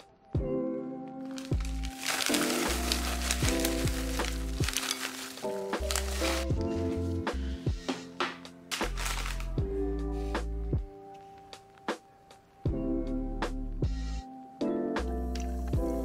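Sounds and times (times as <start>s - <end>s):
popcorn poured into glass bowl: 1.4s - 6.5s
background music with bass line: 5.7s - 11.0s, 12.7s - 16.0s.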